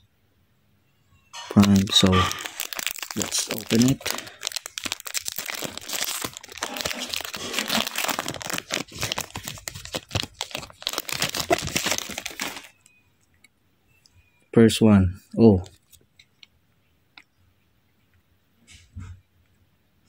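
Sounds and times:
foil wrapper crinkling and tearing: 0:01.4 - 0:12.8.

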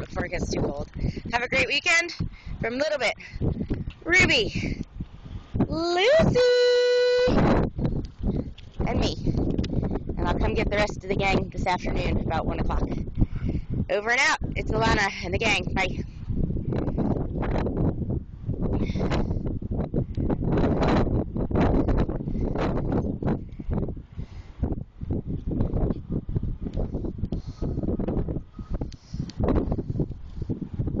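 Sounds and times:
wind buffeting microphone: 0:00.0 - 0:31.0.

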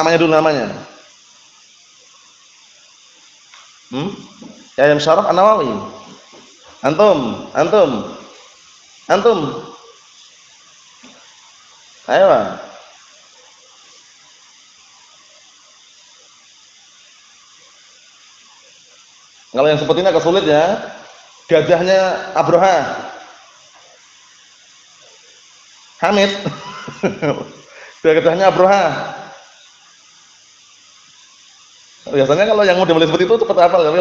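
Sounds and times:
faint steady hiss: 0:00.0 - 0:34.0.

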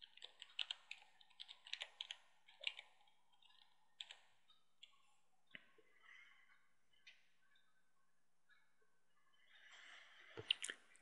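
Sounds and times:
keyboard typing: 0:00.0 - 0:05.0.

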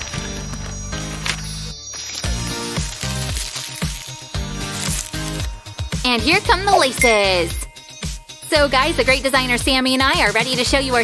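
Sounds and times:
music with rhythmic beat and bass: 0:00.0 - 0:11.0.

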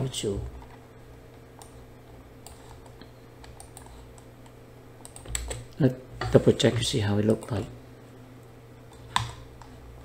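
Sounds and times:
steady low hum: 0:00.0 - 0:10.0
computer keyboard keystrokes: 0:02.4 - 0:04.3, 0:05.0 - 0:05.8.

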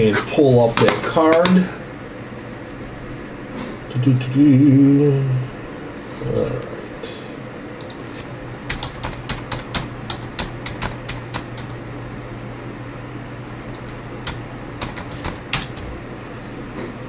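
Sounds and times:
steady low hum: 0:00.0 - 0:17.0
keyboard typing: 0:08.7 - 0:11.8, 0:13.6 - 0:15.9.

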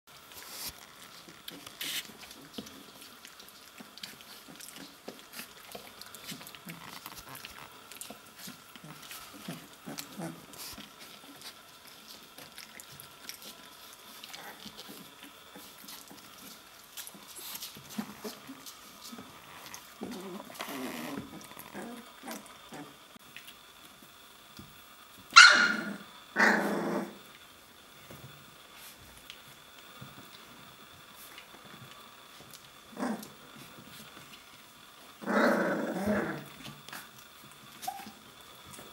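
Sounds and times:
puppies growling: 0:00.7 - 0:23.2, 0:25.6 - 0:27.4, 0:32.5 - 0:38.8
puppy barking: 0:25.4 - 0:26.0.

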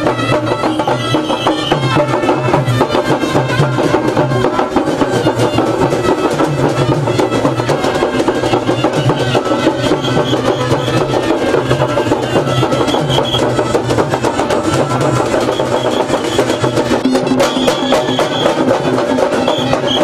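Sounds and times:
drum band fast beat: 0:00.0 - 0:20.0
held melody line: 0:00.0 - 0:20.0.

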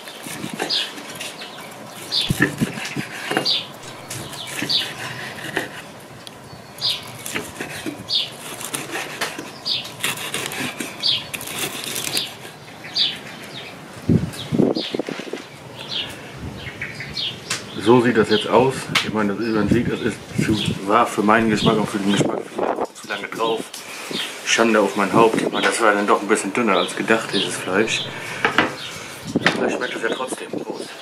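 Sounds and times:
bird chirping: 0:00.0 - 0:10.3, 0:10.9 - 0:13.8, 0:14.4 - 0:17.8, 0:20.0 - 0:22.0, 0:26.6 - 0:30.3.

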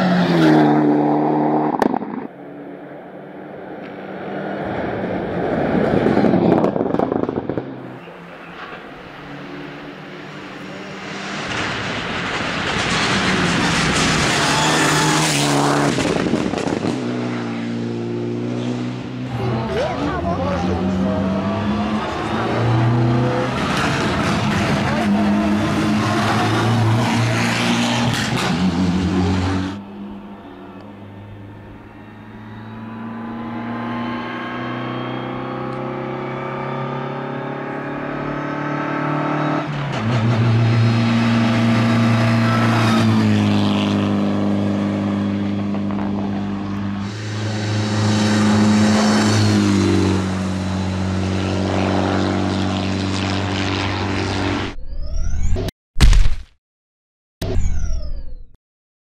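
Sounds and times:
rally car engine revving: 0:03.5 - 0:30.2, 0:30.8 - 0:54.7.

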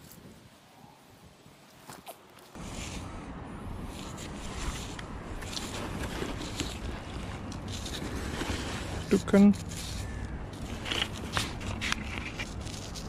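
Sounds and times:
gloved hands and clothing rustling: 0:00.0 - 0:13.0
man speaking: 0:09.1 - 0:09.6.

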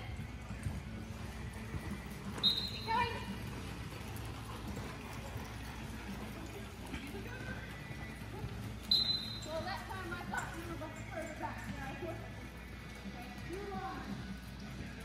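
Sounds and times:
horse hooves on soft dirt: 0:00.0 - 0:15.0.

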